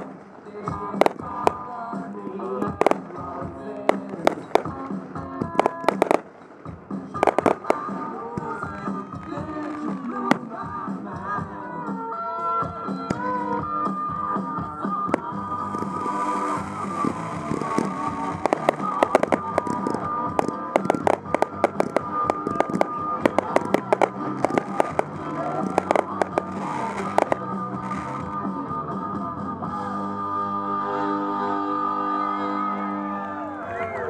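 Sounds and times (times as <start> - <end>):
fireworks exploding: 0.0 - 12.0, 12.9 - 28.7
music: 0.0 - 34.0.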